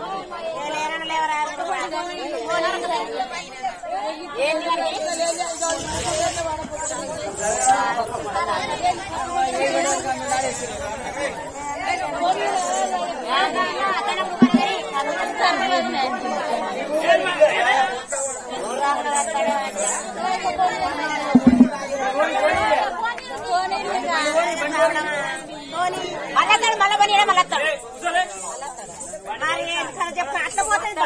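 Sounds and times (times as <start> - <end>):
people chattering: 0.0 - 31.0
short low thumps: 14.4 - 14.6, 21.4 - 21.8.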